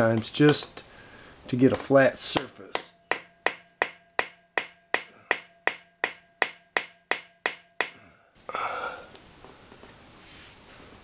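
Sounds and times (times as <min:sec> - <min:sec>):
hammer tapping metal punch: 0:00.0 - 0:00.7, 0:01.7 - 0:08.0.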